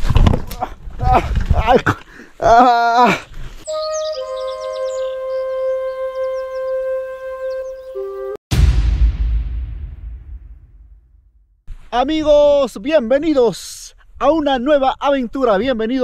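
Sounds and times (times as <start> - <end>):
high bird-like chirps: 3.6 - 8.2
background music held note: 3.7 - 10.1.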